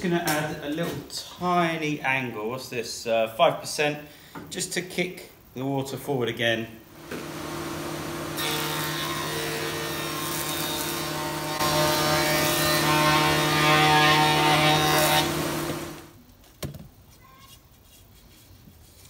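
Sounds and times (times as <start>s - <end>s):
panel saw motor hum: 7.0s - 16.1s
saw blade cutting wood: 7.1s - 16.1s.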